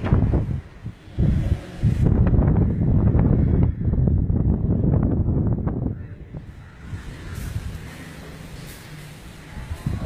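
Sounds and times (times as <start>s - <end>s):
rumbling wind on microphone: 0.0s - 8.6s, 9.2s - 10.0s.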